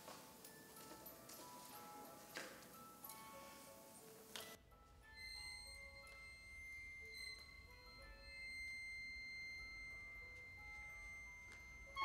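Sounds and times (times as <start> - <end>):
faint high tones of small wind instrument: 4.7 - 12.0.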